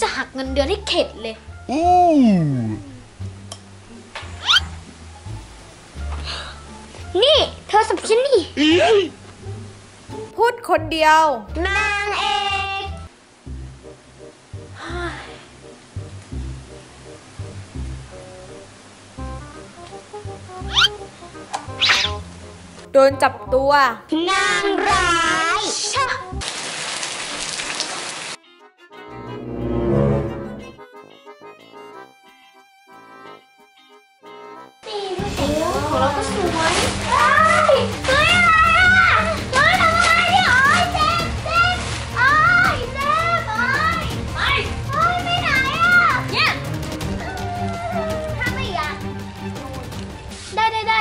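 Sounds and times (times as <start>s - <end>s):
rain on paving and gravel: 15.9s - 20.6s, 26.4s - 28.4s, 35.6s - 46.0s
upward whistle-like slide: 21.8s - 22.2s
falling pitch slide effect: 29.1s - 30.8s.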